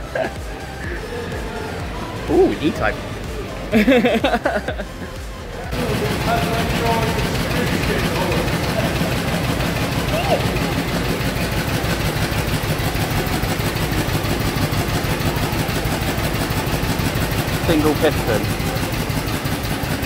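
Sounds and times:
single-cylinder engine idling: 0.0s - 20.0s.

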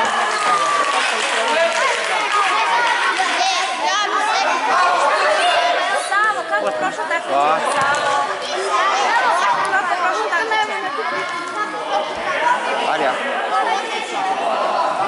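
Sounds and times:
chatter of many voices: 0.0s - 15.0s.

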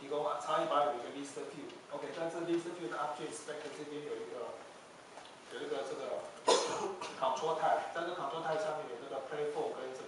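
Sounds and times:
man coughing: 6.4s - 7.2s.

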